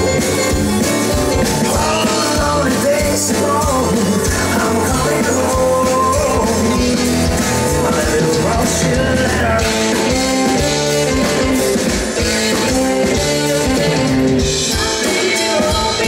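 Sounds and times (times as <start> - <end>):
live rock band playing: 0.0 - 16.0
man singing lead vocals: 1.4 - 16.0.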